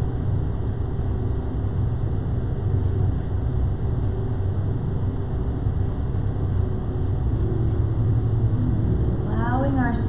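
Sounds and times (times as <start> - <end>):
faint hum: 0.0 - 10.0
low rumble: 1.8 - 10.0.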